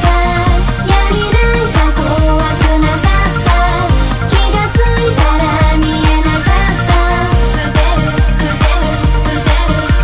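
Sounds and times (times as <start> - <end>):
electronic pop music: 0.0 - 10.0.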